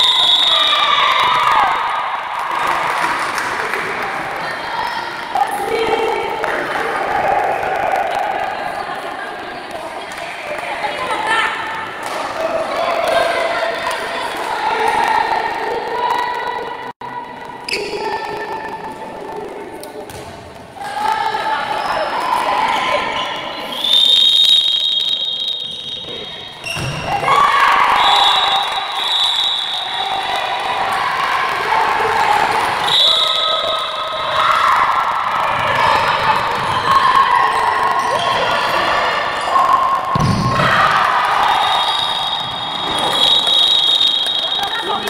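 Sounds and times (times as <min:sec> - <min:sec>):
shrill whistle: 0:00.0 - 0:01.4, 0:23.1 - 0:27.1, 0:27.8 - 0:30.2, 0:32.8 - 0:34.4, 0:41.4 - 0:45.0.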